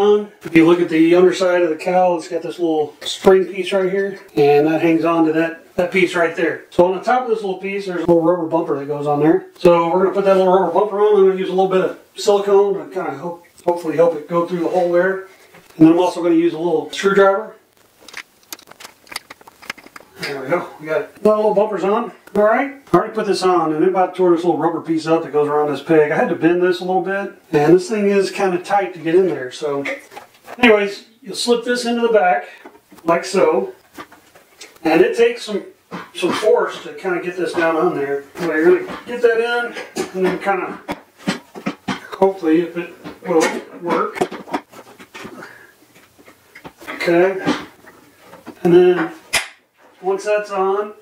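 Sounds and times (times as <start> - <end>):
quiet handling: 12.8 - 22.5, 28.3 - 50.7
small clicks and scrapes: 17.7 - 20.2.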